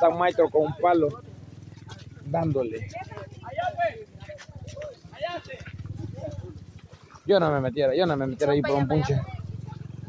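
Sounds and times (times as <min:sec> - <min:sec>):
distant voices talking: 0:00.0 - 0:10.0.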